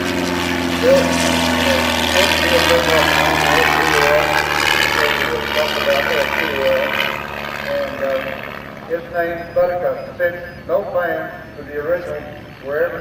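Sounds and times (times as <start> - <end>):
light aircraft engine droning: 0.0 - 13.0
man talking over loudspeaker: 0.8 - 13.0.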